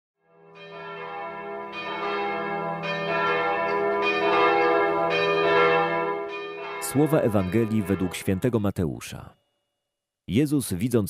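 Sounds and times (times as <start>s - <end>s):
bell tones ringing: 1.7s - 8.4s.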